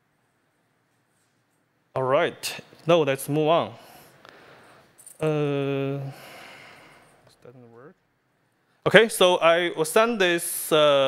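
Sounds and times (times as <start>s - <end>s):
man saying uh: 5.2s - 6.2s
breathy exhale: 6.0s - 7.2s.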